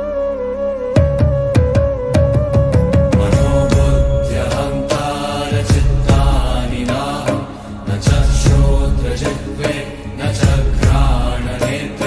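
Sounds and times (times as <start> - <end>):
drum strokes: 1.0 - 12.0
person chanting: 3.1 - 12.0.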